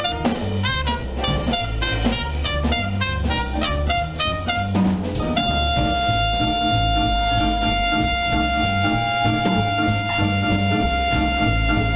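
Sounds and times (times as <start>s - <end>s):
drums: 0.0s - 11.9s
piano: 0.0s - 11.9s
trumpet solo: 0.0s - 11.9s
upright bass: 0.0s - 11.9s.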